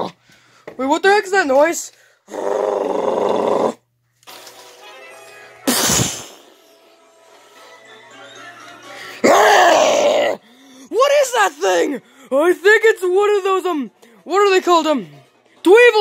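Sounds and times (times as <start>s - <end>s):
monster growling: 2.3s - 3.8s, 9.2s - 10.4s
faint music: 4.2s - 16.0s
sudden loud burst: 5.7s - 6.5s.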